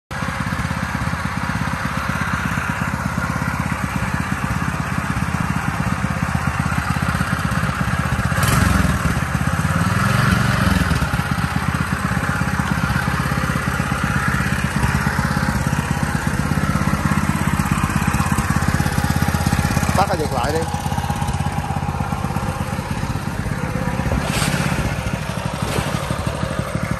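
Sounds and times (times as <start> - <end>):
petrol engine running: 0.1 - 26.9.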